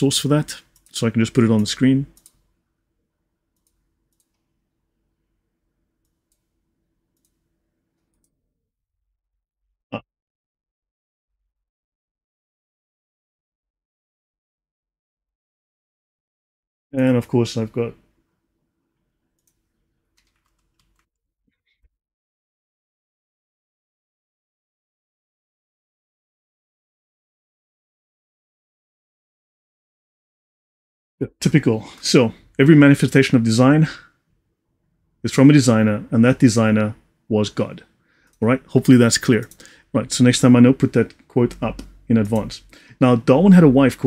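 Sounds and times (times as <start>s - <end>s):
computer mouse clicks: 1.6s - 2.5s, 3.6s - 4.5s, 7.2s - 7.4s, 19.4s - 21.1s, 38.3s - 39.8s, 41.1s - 42.6s.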